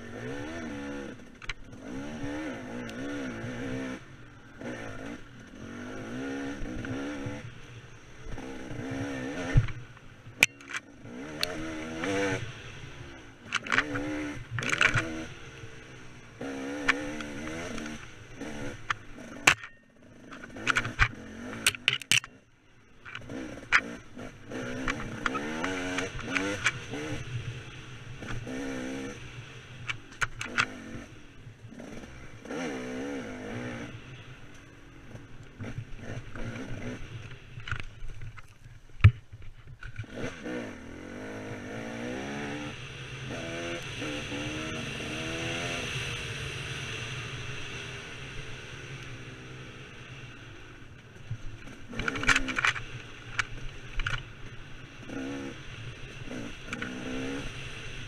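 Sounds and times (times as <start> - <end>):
dirt bike engine revving: 0.0 - 22.4, 23.1 - 37.9, 40.0 - 58.0.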